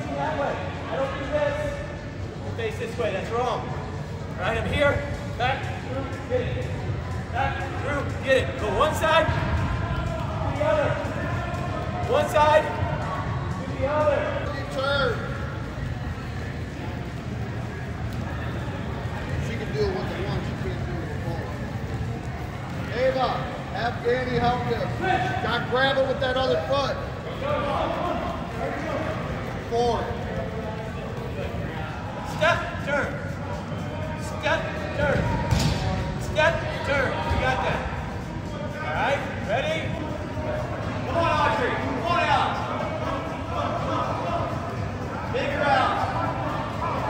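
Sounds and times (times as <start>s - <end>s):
background murmur of voices: 0.0s - 47.0s.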